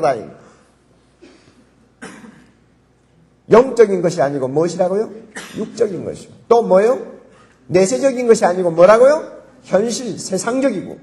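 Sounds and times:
person coughing faintly: 0:01.2 - 0:02.6, 0:05.3 - 0:05.8.

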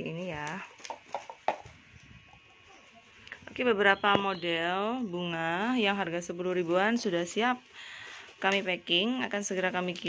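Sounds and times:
bubble wrap clicks and crinkles: 0:00.2 - 0:01.8, 0:06.7 - 0:10.0.

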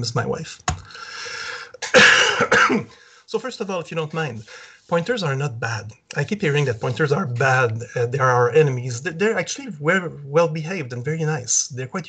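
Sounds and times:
soft breathy noise: 0:00.8 - 0:01.8, 0:02.9 - 0:03.4, 0:04.3 - 0:04.9
man coughing: 0:01.7 - 0:03.0.

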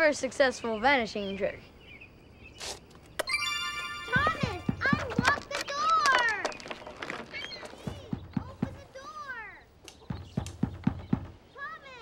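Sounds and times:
dull thumps on wooden box: 0:07.8 - 0:08.9, 0:10.0 - 0:11.4.

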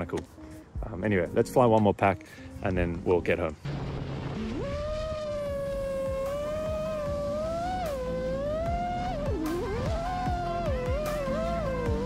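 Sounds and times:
background music: 0:00.0 - 0:04.8, 0:05.5 - 0:12.0
quadcopter motors whining: 0:04.7 - 0:12.0.

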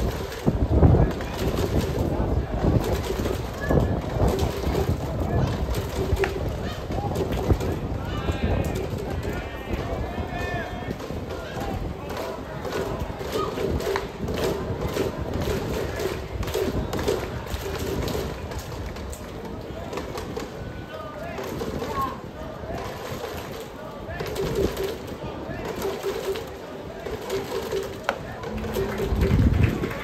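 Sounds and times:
crowd chattering: 0:00.0 - 0:30.0.

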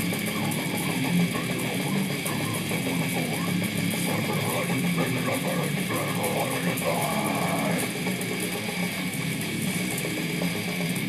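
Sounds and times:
electric guitar metal riff: 0:00.0 - 0:11.0
metal song from laptop speakers: 0:00.0 - 0:11.0.

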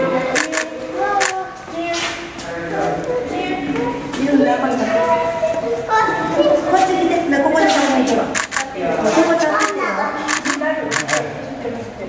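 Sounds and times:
onlookers chattering: 0:00.0 - 0:12.0
camera shutter clicks: 0:00.3 - 0:01.4, 0:08.4 - 0:08.7, 0:09.6 - 0:11.2.

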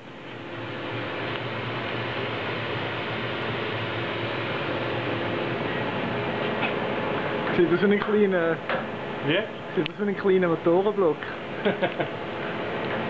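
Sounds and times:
machinery humming and hissing: 0:00.0 - 0:13.0.

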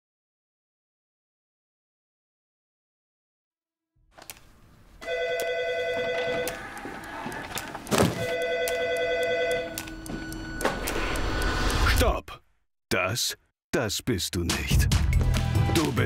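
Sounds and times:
telephone ringing: 0:05.0 - 0:11.2.

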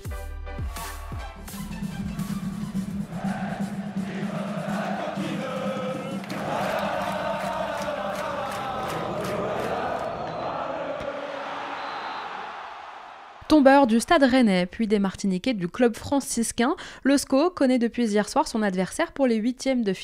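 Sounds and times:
crowd chanting: 0:02.6 - 0:13.5.

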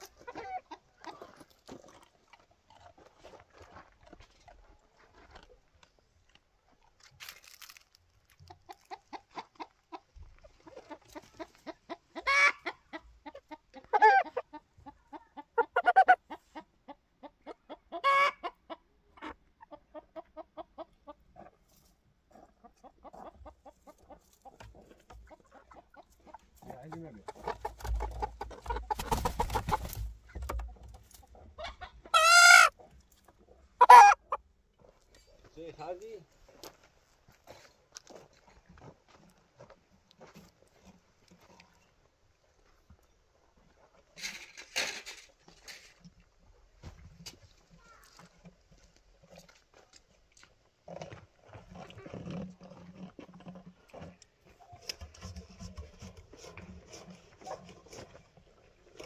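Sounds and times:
hens clucking: 0:00.0 - 0:02.0, 0:08.3 - 0:34.5.

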